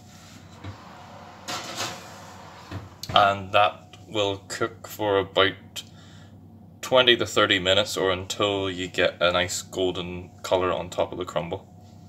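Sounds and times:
pie dish scraping in oven: 0.0s - 3.2s.

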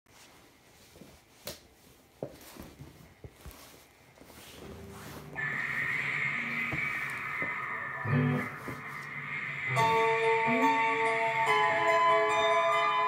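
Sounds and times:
amp high whine: 4.6s - 13.0s
electric guitar strings ringing: 5.3s - 13.0s.

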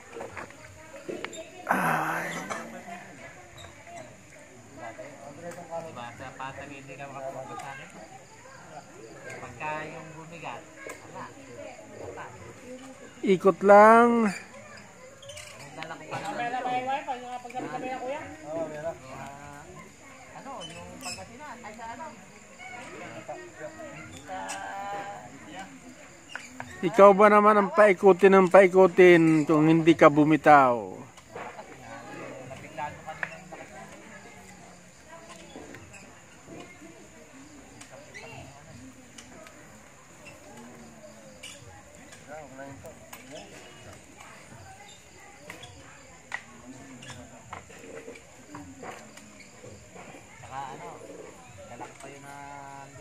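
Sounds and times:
background chatter of people: 0.0s - 53.0s
background voices: 0.5s - 3.2s.

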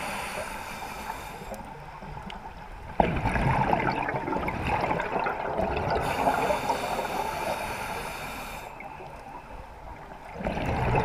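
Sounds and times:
underwater exhaust bubbles: 0.0s - 11.0s.

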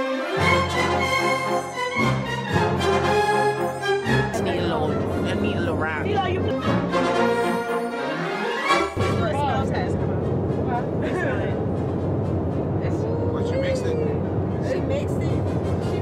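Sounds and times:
jet cabin drone: 0.3s - 7.6s, 8.8s - 16.0s.

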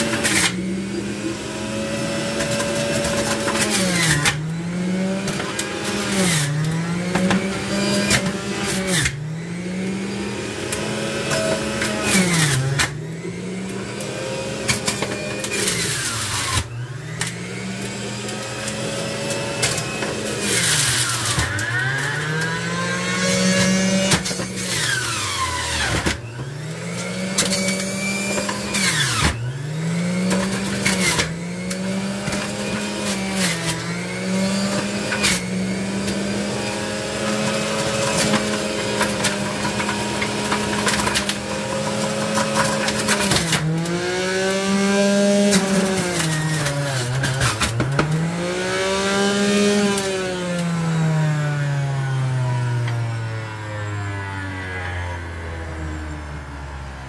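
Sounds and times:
juicer motor running: 0.0s - 57.0s.

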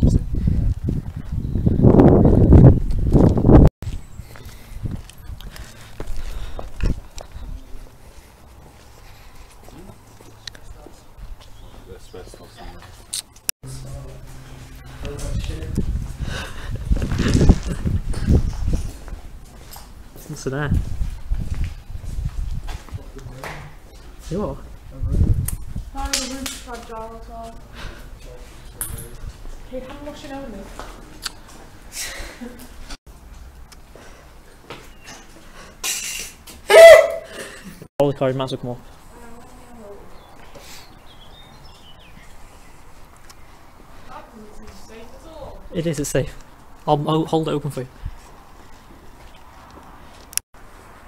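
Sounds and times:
wind buffeting microphone: 0.0s - 8.0s, 14.5s - 28.0s
footsteps on gritty concrete: 2.7s - 11.9s, 12.8s - 24.4s.

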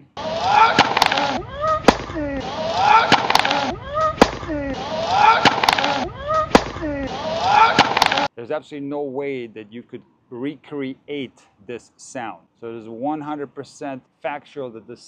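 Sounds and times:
racket striking tennis ball: 0.6s - 7.0s, 7.6s - 8.3s.

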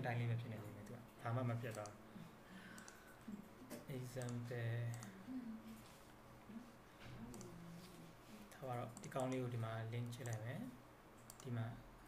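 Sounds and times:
computer mouse clicking: 1.7s - 2.0s, 2.8s - 3.1s, 3.7s - 5.1s, 7.3s - 7.5s, 8.9s - 10.5s, 11.2s - 11.6s.

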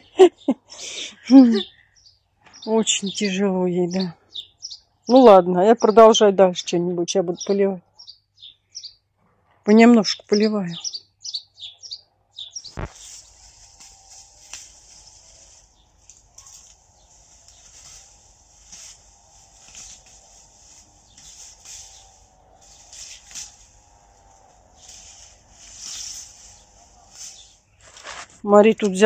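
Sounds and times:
small birds chirping: 0.0s - 29.0s.

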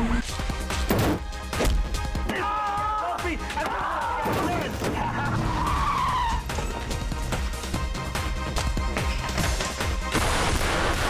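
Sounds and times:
car tyres squealing: 4.9s - 6.9s.

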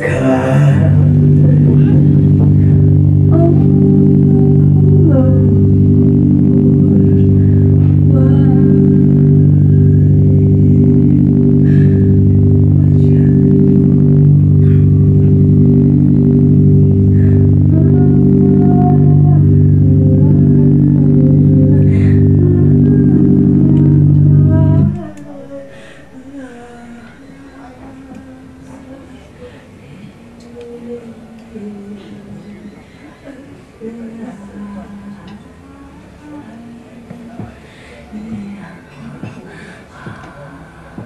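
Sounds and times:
low musical drone: 0.0s - 32.6s
faint vocal sounds: 0.0s - 41.0s.

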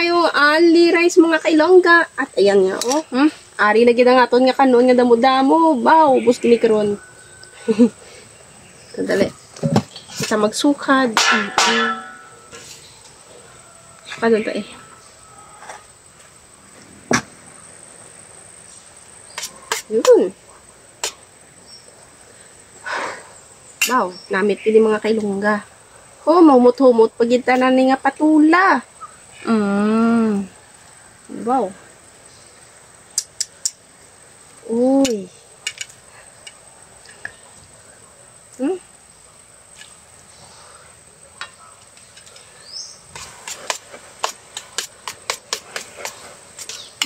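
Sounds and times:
crickets chirring: 0.0s - 47.0s.

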